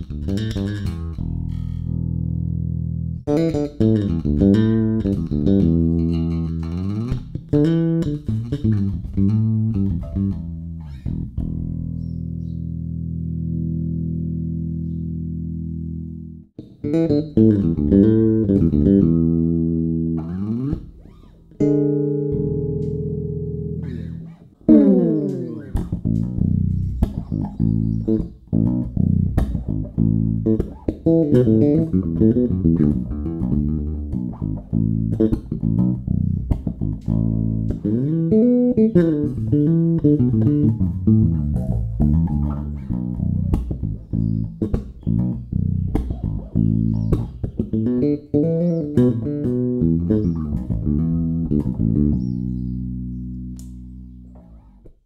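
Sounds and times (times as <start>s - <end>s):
electric bass playing solo: 0.0s - 55.0s.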